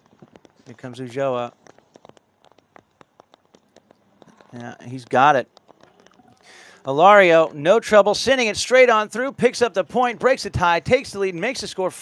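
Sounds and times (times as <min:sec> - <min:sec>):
raindrops ticking on hard surface: 0:00.0 - 0:11.5.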